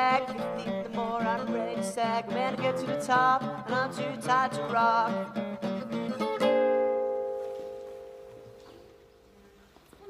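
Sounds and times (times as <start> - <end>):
acoustic guitar strumming: 0.0 - 9.3.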